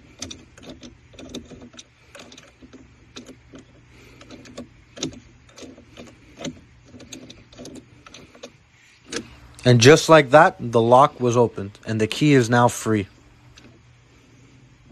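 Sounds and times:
wooden blocks clicking and scraping: 0:00.0 - 0:09.8.

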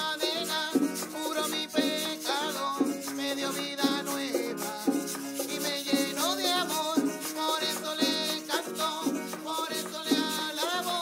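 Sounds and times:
maracas shaking: 0:00.0 - 0:11.0.

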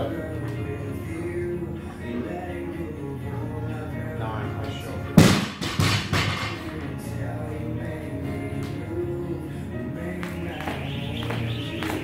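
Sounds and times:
background music: 0:00.0 - 0:12.0
barbell crashing onto floor: 0:05.2 - 0:06.6
barbell bouncing: 0:05.2 - 0:06.7.

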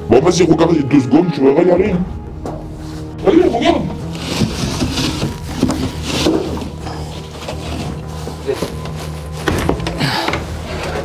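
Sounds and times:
background music drone: 0:00.0 - 0:11.0
wooden panel scraping: 0:04.1 - 0:06.8.

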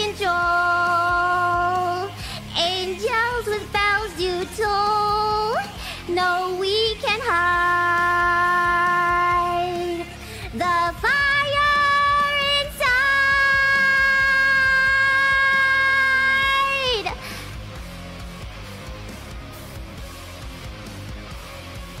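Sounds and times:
rock backing track: 0:00.0 - 0:22.0.

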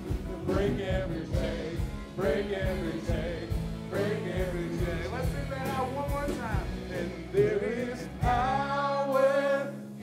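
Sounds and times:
drum kit: 0:00.0 - 0:10.0
keyboard: 0:00.0 - 0:10.0
voices singing: 0:00.4 - 0:10.0.

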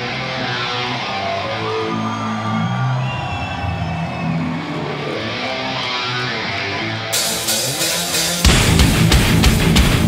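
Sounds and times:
distorted electric guitars: 0:00.0 - 0:03.0, 0:04.0 - 0:10.0.

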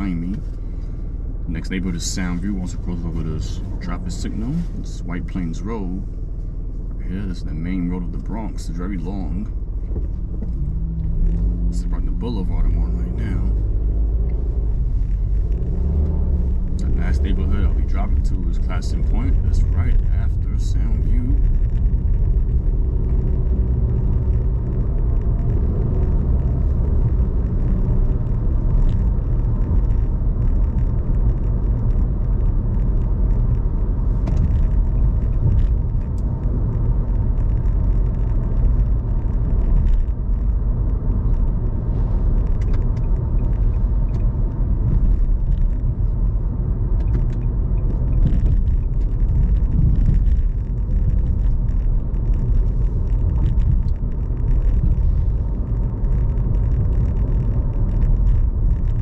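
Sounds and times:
car cabin road rumble: 0:00.0 - 0:59.0.

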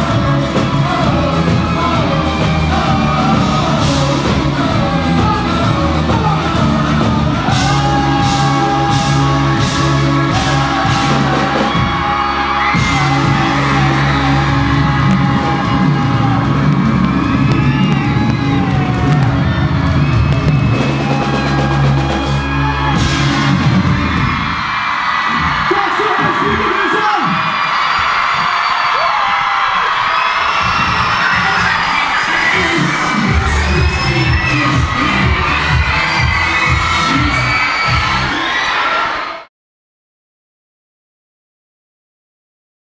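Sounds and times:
live pop music with bass beat: 0:00.0 - 0:38.7
crowd cheering and screaming: 0:00.0 - 0:39.5.

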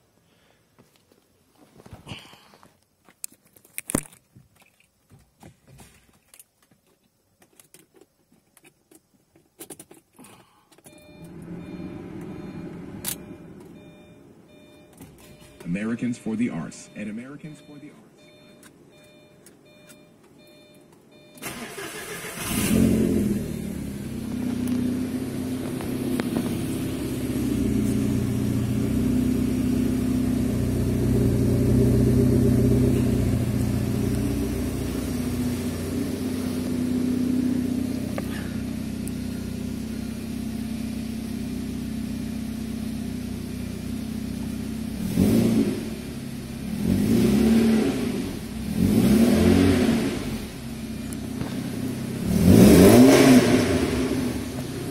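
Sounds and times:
car engine starting and idling: 0:09.6 - 0:54.9
engine revving: 0:21.4 - 0:40.6, 0:44.8 - 0:54.9.

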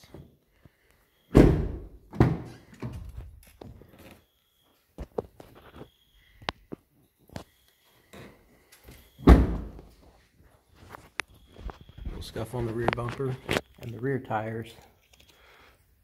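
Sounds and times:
heavy car door thunk: 0:01.4 - 0:02.5, 0:09.3 - 0:09.8.

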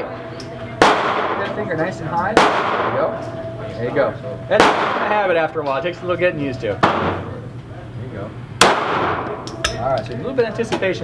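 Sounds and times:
handgun shot echoing: 0:00.8 - 0:01.4, 0:08.6 - 0:09.8.

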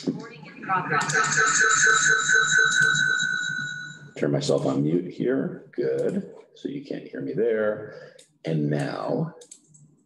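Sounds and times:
audio feedback squeal: 0:00.0 - 0:05.1.

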